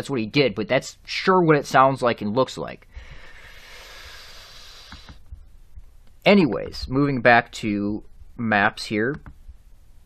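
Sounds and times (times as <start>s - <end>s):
steady hiss: 0.4s - 10.0s.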